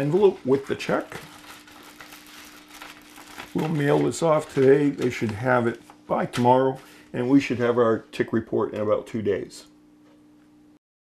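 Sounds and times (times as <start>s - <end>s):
plastic bag crinkling: 0.0s - 6.4s.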